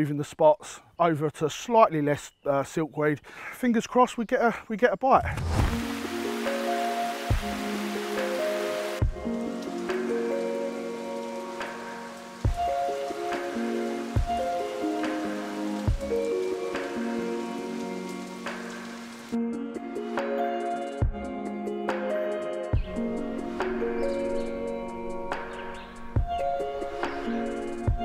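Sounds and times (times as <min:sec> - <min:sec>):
rain falling on lake: 0:05.5 - 0:19.4, 0:22.9 - 0:28.0
slow background music: 0:05.5 - 0:28.0
soft low beat: 0:09.0 - 0:09.4.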